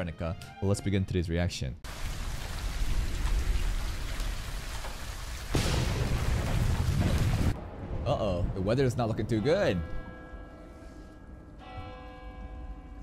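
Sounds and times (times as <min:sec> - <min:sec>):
rain falling: 0:01.9 - 0:07.6
thunder rumble: 0:01.9 - 0:10.0.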